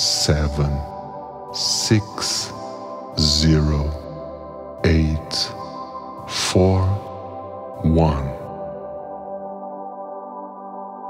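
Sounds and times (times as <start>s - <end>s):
calm voice speaking syllables: 0.0s - 4.2s, 4.8s - 7.2s, 7.8s - 8.6s
ambient music drone: 0.0s - 11.0s.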